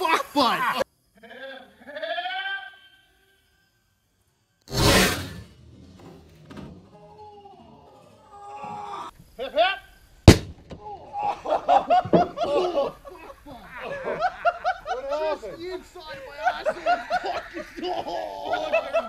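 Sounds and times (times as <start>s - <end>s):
voices: 6.4s - 10.1s, 10.8s - 19.0s
car airbag bang: 10.3s - 10.8s
people laughing: 11.1s - 19.0s.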